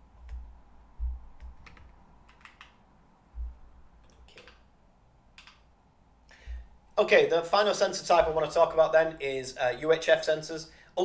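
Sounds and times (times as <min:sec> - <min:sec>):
dull low thumps: 0:00.0 - 0:01.7, 0:03.3 - 0:04.0, 0:06.4 - 0:06.8
computer keyboard clicks: 0:01.4 - 0:02.8, 0:04.0 - 0:04.6, 0:05.4 - 0:05.6.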